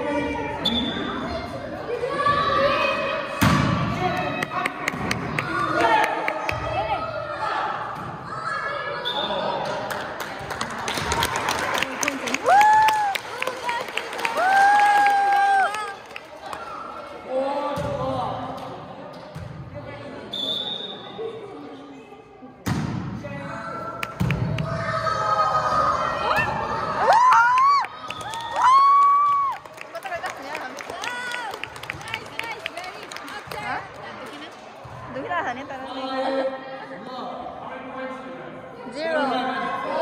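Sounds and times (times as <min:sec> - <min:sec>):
children chattering and shouting: 0:00.0 - 0:03.4, 0:06.6 - 0:09.0
volleyball bouncing on hard floor: 0:24.1 - 0:24.6.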